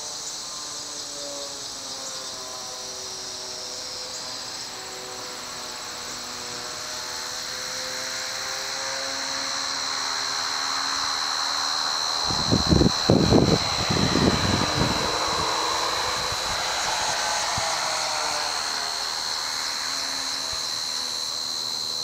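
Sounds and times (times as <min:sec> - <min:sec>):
high-pitched insects droning: 0:00.0 - 0:22.0
faint low drone: 0:07.2 - 0:22.0.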